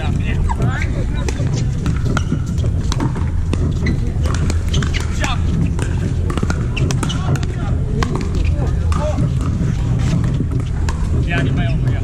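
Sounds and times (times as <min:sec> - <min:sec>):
steady low rumble: 0:00.0 - 0:12.0
paddles striking plastic balls: 0:00.6 - 0:12.0.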